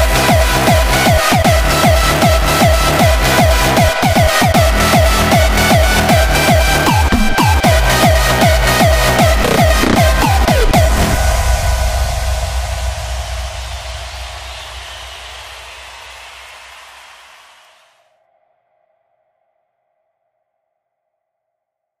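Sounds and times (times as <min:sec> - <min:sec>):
electronic noise wash: 0:08.5 - 0:18.0
low rumble: 0:09.3 - 0:17.6.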